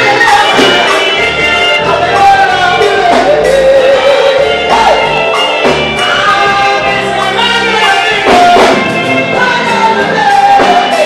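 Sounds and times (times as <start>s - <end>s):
band playing: 0.0s - 11.0s
man singing lead: 0.0s - 11.0s
woman singing backing vocals: 1.8s - 5.0s, 6.0s - 11.0s.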